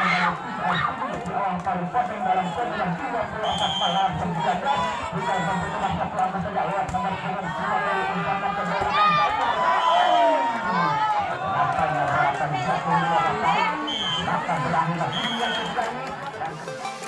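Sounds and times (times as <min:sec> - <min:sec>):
crowd talking and shouting: 0:00.0 - 0:17.0.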